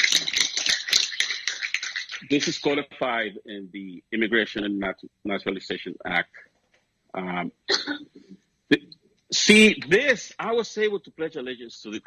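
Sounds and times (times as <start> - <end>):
audience applauding: 0.0 - 2.7.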